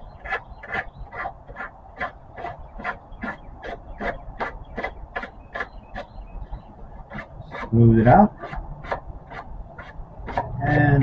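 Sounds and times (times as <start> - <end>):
wood sanding strokes: 0.0 - 6.1, 7.1 - 11.0.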